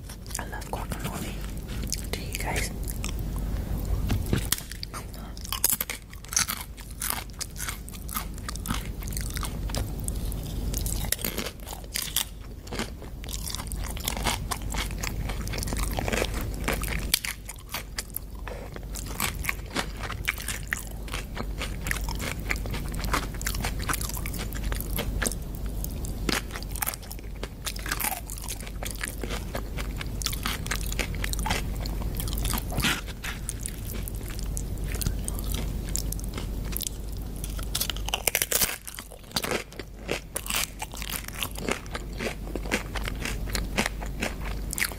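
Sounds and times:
person chewing crunchy food: 0.0 - 44.9.

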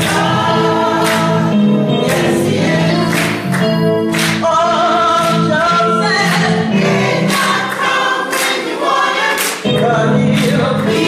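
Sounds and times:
choir singing: 0.0 - 11.0.

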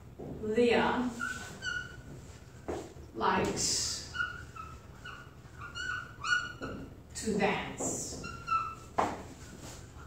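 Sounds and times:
marker squeaking on whiteboard: 1.1 - 2.8, 3.5 - 7.0, 7.8 - 10.0.

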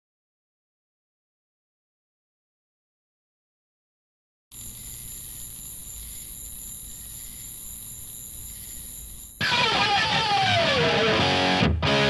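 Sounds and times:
steady hiss: 4.6 - 9.4
faint hum: 4.6 - 9.5
distorted electric guitar sliding: 4.6 - 12.0.

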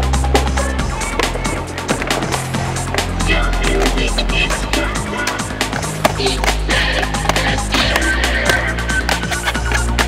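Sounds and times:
electronic music with beat: 0.0 - 10.0
skateboard wheels rolling: 0.0 - 10.0
skateboard knocking on pavement: 0.3 - 4.1.

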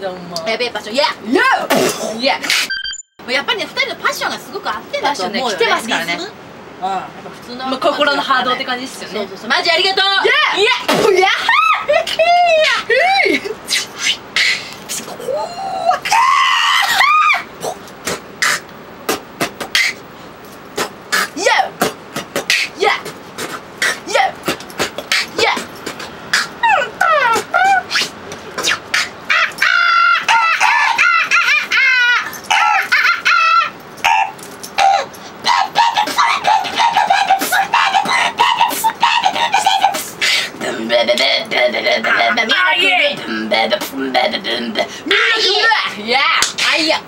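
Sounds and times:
beatboxing: 1.7 - 2.7, 13.6 - 15.5, 17.6 - 31.6, 34.0 - 46.9
woman shrieking: 11.2 - 13.5, 15.2 - 17.5, 26.4 - 28.1, 28.9 - 40.4.

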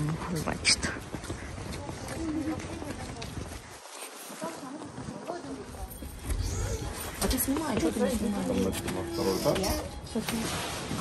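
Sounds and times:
footsteps on pavement: 0.0 - 10.4
indistinct talking: 0.0 - 10.4.

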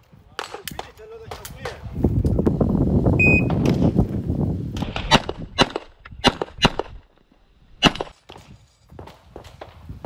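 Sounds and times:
shot timer beep: 3.2 - 3.5.

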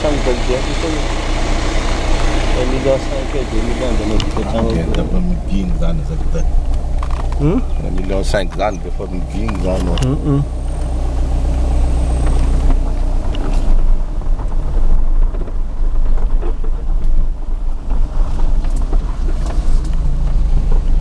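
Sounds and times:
car driving rumble: 0.0 - 21.0.

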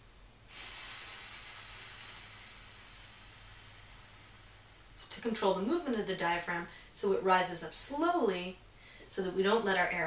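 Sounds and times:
slow exhale through lips: 0.5 - 5.1.

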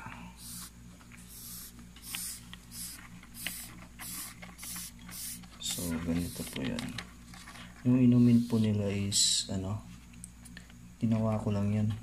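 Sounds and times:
cockroaches hissing: 0.2 - 6.8, 8.0 - 9.2.

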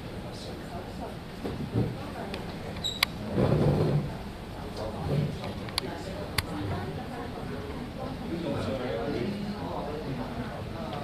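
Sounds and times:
room murmur: 0.0 - 11.0.

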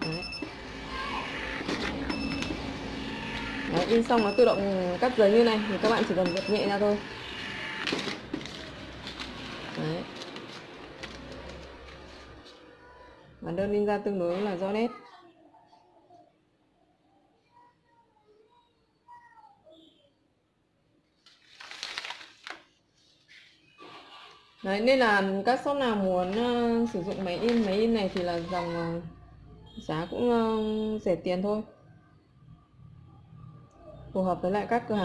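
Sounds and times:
receipt paper rustling: 0.9 - 12.9, 21.2 - 23.6, 26.1 - 28.9
soft paper crinkles: 7.8 - 13.2, 21.0 - 23.7, 26.2 - 28.8.

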